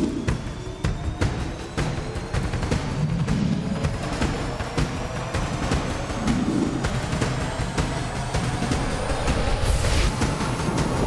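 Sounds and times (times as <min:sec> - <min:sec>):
theme music with heavy drum beat: 0:00.0 - 0:11.0.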